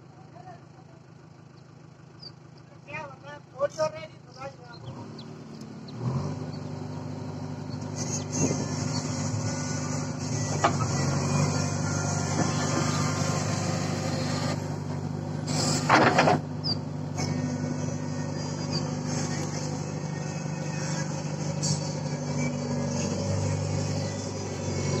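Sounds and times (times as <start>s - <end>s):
diesel engine running: 0.0s - 25.0s
loud engine burst: 15.4s - 19.6s.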